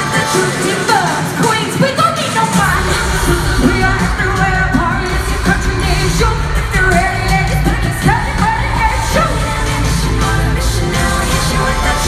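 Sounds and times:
female group vocals singing: 0.0 - 12.0
heavy bass-driven backing: 2.5 - 12.0.

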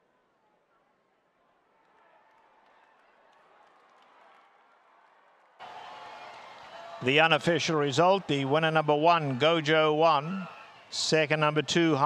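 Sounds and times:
racetrack crowd murmur: 0.0 - 12.0.

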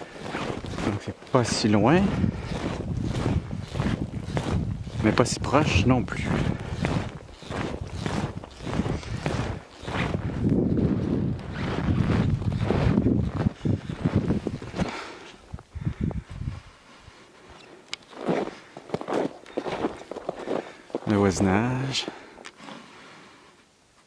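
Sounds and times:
wind noise on microphone: 0.0 - 17.2
footsteps on packed snow: 0.0 - 22.9.

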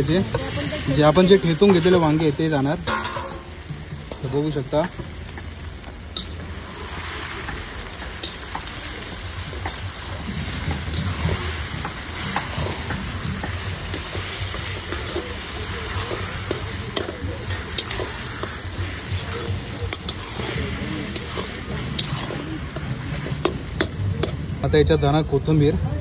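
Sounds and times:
metal spatula scraping pan: 0.0 - 4.5, 10.6 - 24.4
eggplant sizzling in oil: 0.0 - 26.0.

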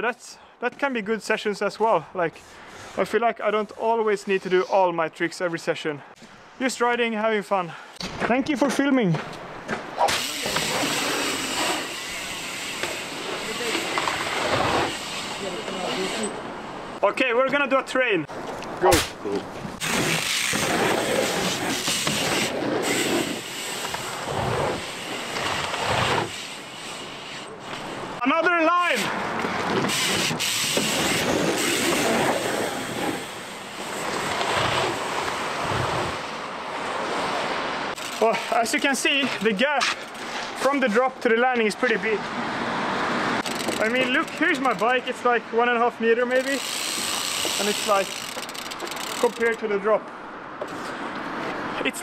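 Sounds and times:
bike tyres rolling on wood and dirt: 9.1 - 17.0, 18.3 - 28.2, 29.2 - 37.0, 43.4 - 45.2, 46.3 - 49.8.

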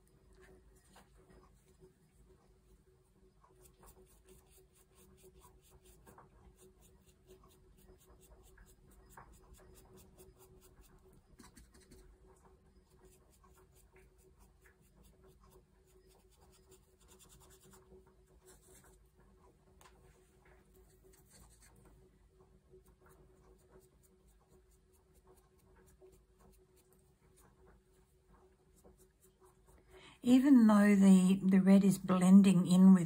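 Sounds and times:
faint steady hum: 0.0 - 33.0
brush scratching on paper: 3.4 - 19.2, 20.7 - 22.1, 22.8 - 29.9.

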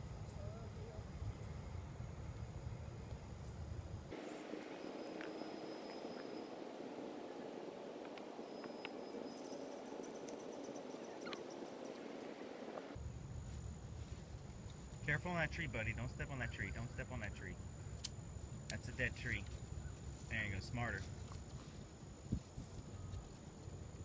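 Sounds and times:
wind rumble on microphone: 0.0 - 4.1, 21.0 - 24.0.

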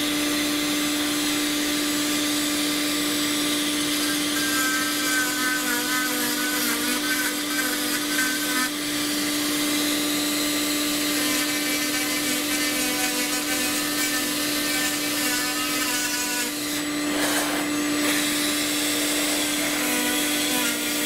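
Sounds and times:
rotary tool grinding: 4.0 - 9.2, 11.0 - 21.0.

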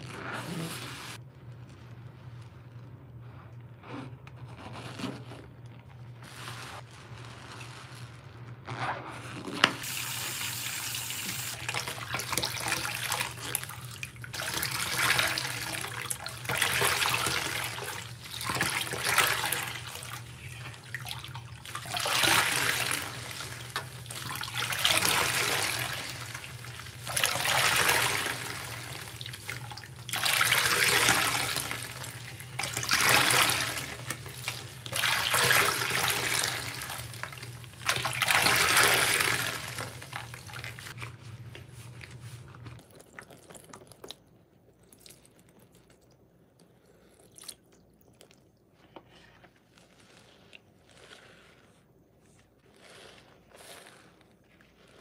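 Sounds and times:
wet sponge squelching: 0.0 - 44.1, 46.8 - 55.0.

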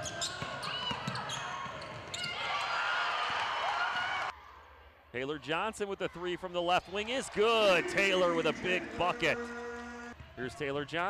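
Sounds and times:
sneakers squeaking: 0.0 - 2.8.

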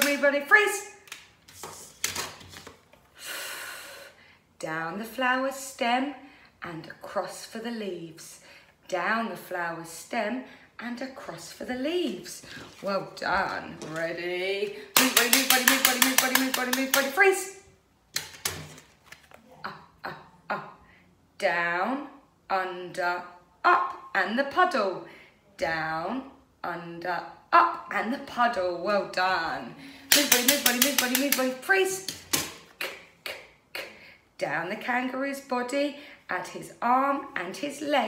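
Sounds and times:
sharp knocks of objects: 14.9 - 17.3, 30.1 - 32.7
card rustling and clicking: 18.2 - 19.4.

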